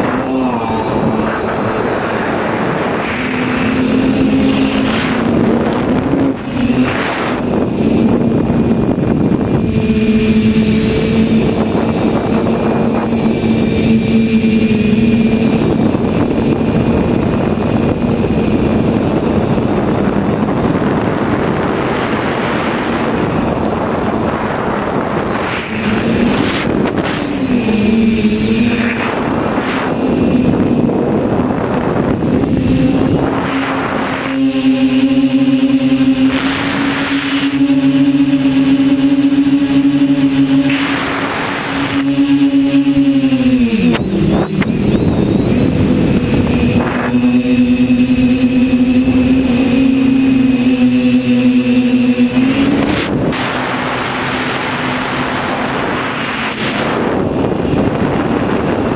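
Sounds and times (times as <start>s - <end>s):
air rushing over microphone: 0.0s - 34.4s
drone motors whining: 0.0s - 58.9s.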